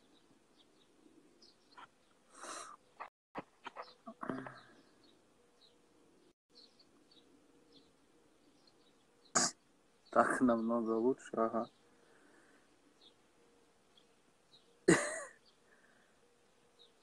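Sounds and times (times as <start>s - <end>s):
rustles and clicks: 2.9s - 4.6s.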